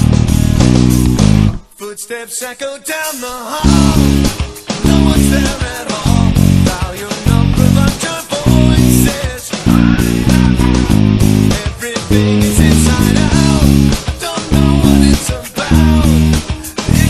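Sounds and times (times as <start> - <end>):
electric bass: 0.0 - 1.7, 3.6 - 17.0
drums: 0.0 - 1.8, 2.9 - 17.0
electric guitar: 0.0 - 1.8, 3.6 - 17.0.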